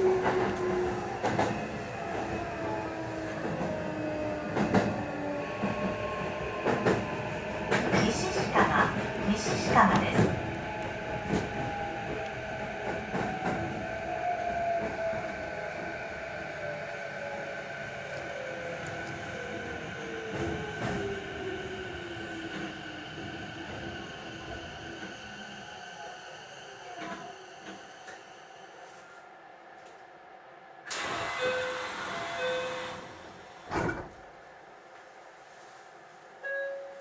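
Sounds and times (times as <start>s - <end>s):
train rumbling on rails: 0.0s - 28.6s.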